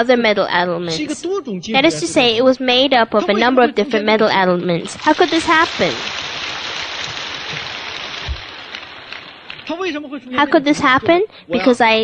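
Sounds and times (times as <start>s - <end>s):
rain-like crackling: 4.8s - 10.8s.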